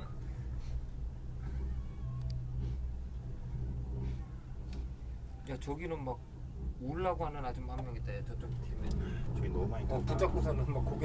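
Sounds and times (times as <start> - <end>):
cable car rumble: 0.0 - 11.0.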